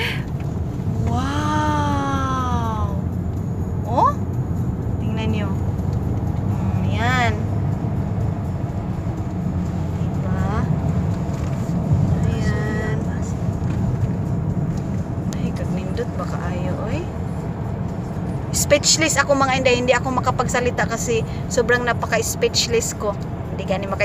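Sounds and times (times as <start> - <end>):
car cabin road noise: 0.0 - 24.0.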